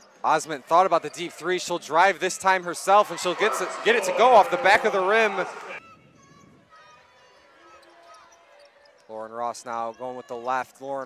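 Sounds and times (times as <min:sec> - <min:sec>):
low arena noise: 0:00.0 - 0:11.0
sneakers squeaking: 0:03.1 - 0:09.1.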